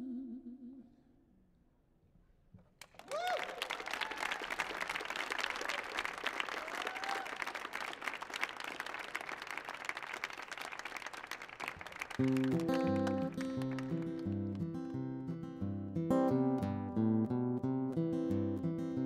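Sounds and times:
audience applauding: 0:02.8 - 0:14.8
people whooping: 0:03.0 - 0:09.2
strummed acoustic guitar: 0:12.2 - 0:19.0.

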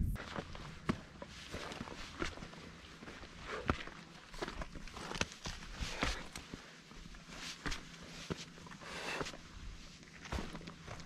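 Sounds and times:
footsteps on stony ground: 0:00.0 - 0:11.0.

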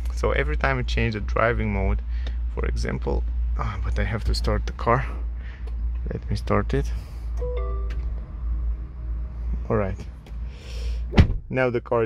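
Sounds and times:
two-tone electronic chime: 0:07.4 - 0:08.0.

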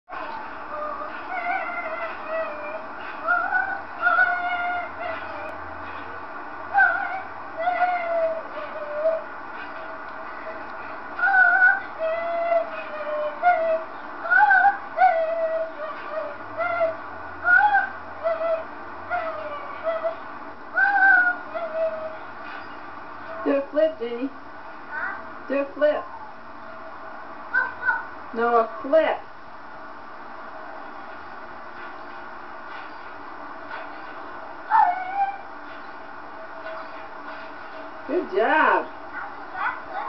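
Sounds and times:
steady background hiss: 0:00.1 - 0:40.0
girl singing mock-operatically: 0:11.2 - 0:20.2
dog yelping bark: 0:27.6 - 0:28.1, 0:39.1 - 0:39.8.

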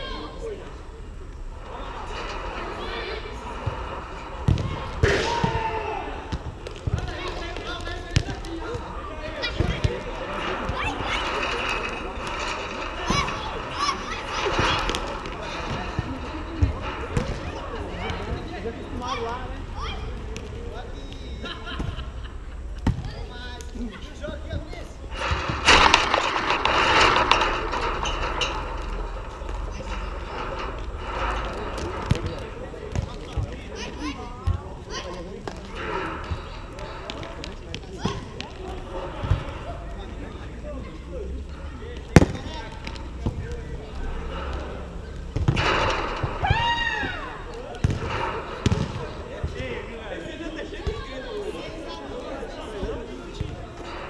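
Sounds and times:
players' voices and shouts: 0:00.0 - 0:54.0.

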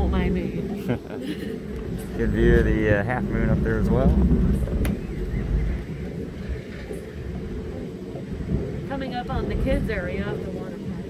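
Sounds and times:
ride car rumbling along track: 0:00.0 - 0:11.0
wind on microphone: 0:00.0 - 0:11.0.

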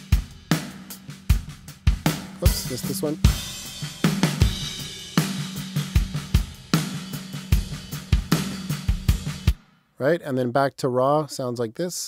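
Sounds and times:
drum kit playing a relaxed groove: 0:00.0 - 0:09.9.

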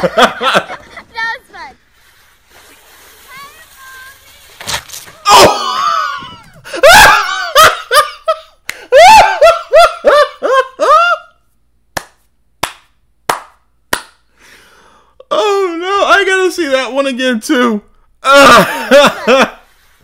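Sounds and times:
man laughing hard: 0:00.0 - 0:01.0, 0:05.3 - 0:11.4, 0:18.3 - 0:19.6
sharp slaps: 0:11.9 - 0:14.3.

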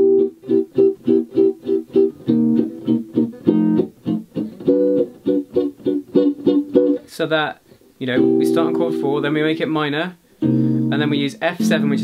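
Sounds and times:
electric guitar comping short chords: 0:00.0 - 0:07.1, 0:10.4 - 0:12.0.

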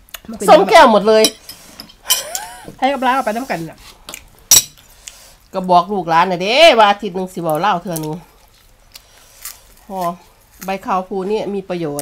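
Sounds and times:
woman talking: 0:00.3 - 0:01.4, 0:02.7 - 0:03.8, 0:05.6 - 0:08.3, 0:09.9 - 0:12.0.

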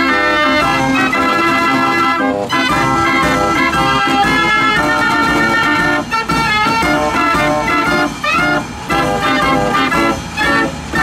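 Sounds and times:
fairground organ playing chords: 0:00.0 - 0:11.0.

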